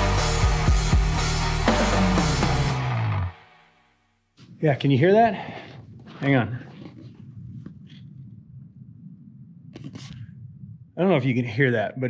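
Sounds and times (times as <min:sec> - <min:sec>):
wind rushing through canyon: 0:04.5 - 0:11.7.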